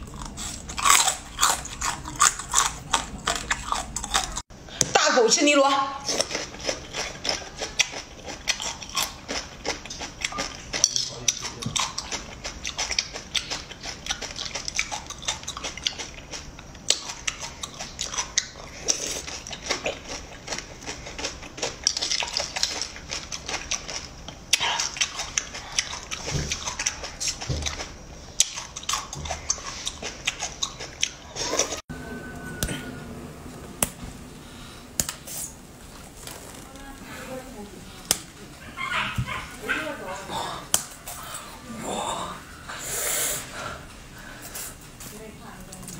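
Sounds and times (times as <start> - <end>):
wet slurping and chewing: 0.0 - 4.5, 6.0 - 31.8.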